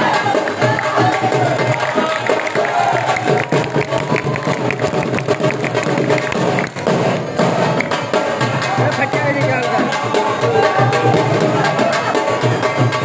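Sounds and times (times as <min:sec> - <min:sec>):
drum beating steady rhythm: 0:00.0 - 0:13.0.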